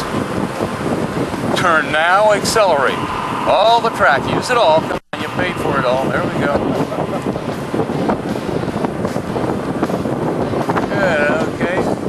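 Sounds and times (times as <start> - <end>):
road noise: 0.0 - 12.0
wind buffeting microphone: 0.0 - 12.0
car engine inside cabin: 6.6 - 10.8.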